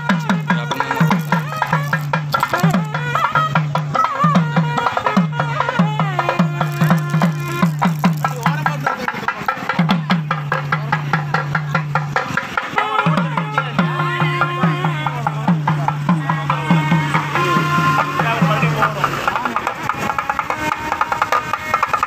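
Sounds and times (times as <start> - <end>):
wavering reed pipe melody: 0.0 - 9.0, 12.7 - 22.0
drum strokes: 0.0 - 22.0.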